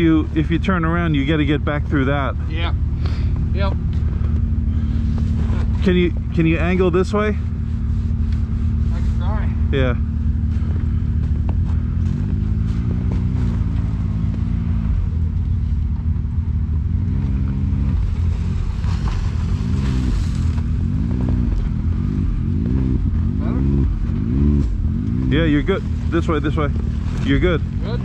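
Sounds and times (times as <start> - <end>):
engine idling with short revs: 0.0 - 28.0.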